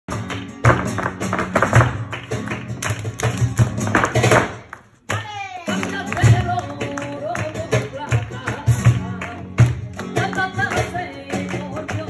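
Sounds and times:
acoustic guitar strummed rhythmically: 0.1 - 12.0.

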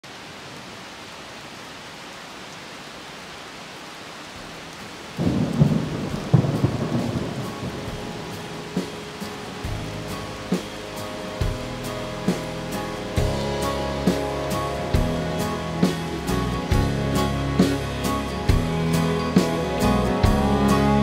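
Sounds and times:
steady rain: 0.0 - 21.0
thunder rumbling: 5.1 - 21.0
musical instruments: 5.2 - 21.0.

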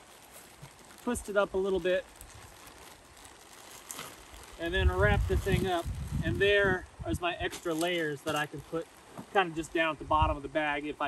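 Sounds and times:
plastic trash bag rustling: 0.0 - 6.7, 7.3 - 10.0.

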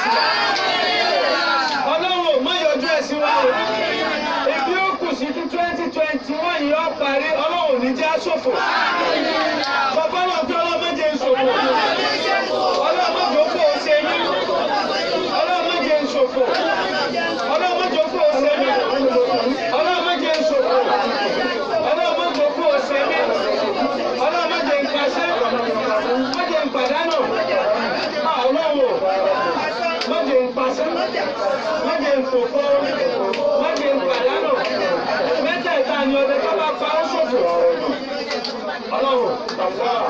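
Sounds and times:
man speaking into a microphone: 1.8 - 3.6, 4.4 - 8.5, 9.9 - 11.8, 15.3 - 16.6, 17.4 - 20.8, 24.1 - 34.6.

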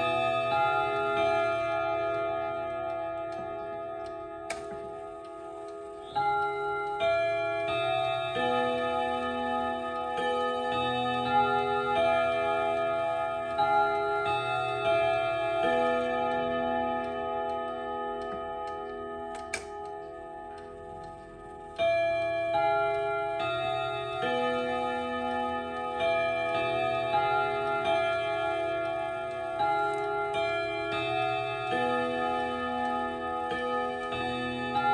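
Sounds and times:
clock chime melody: 0.0 - 34.9.

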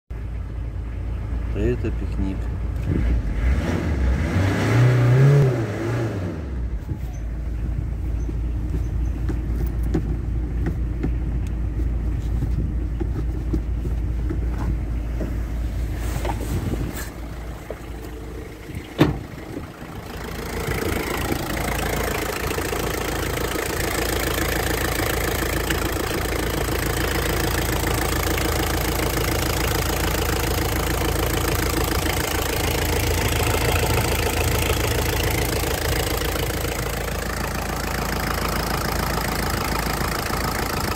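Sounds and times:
diesel engine idling: 0.1 - 2.9, 6.6 - 40.9.

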